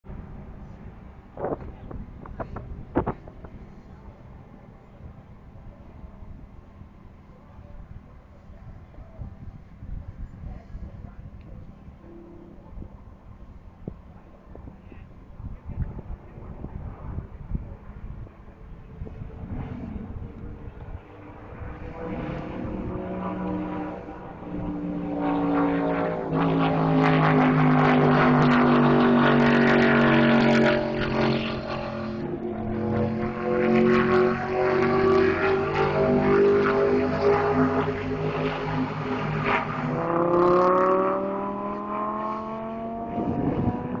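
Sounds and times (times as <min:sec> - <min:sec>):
sports car engines passing: 0:16.1 - 0:44.0.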